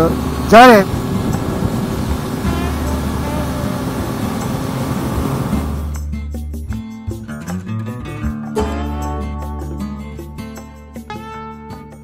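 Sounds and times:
riding wind rushing: 0.0s - 6.0s
motorcycle engine cruising: 0.0s - 6.1s.

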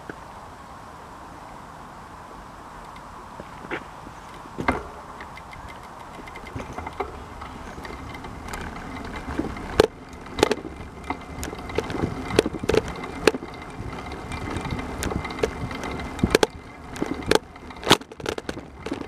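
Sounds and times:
wheels rumbling on concrete: 0.0s - 19.0s
load knocking and rattling: 4.6s - 19.0s.

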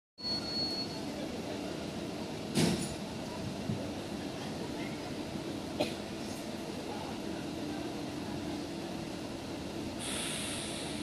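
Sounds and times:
train rumbling and rattling: 0.3s - 11.0s.

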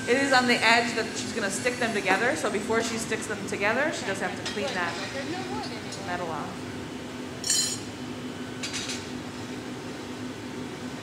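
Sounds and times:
furnace low hum: 0.0s - 11.0s.

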